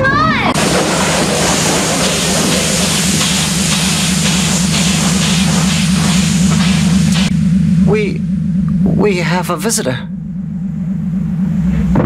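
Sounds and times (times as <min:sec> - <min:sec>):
low pulsing spaceship hum: 0:00.2 - 0:12.0.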